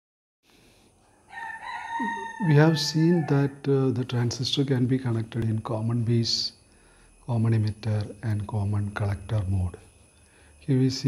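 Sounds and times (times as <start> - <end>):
faint hiss: 0.5 - 11.0
drawn-out pitched call: 1.4 - 3.5.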